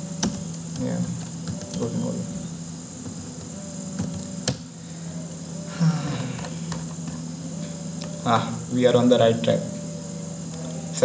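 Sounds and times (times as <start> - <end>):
electrical hum with high whine: 0.0 - 11.0.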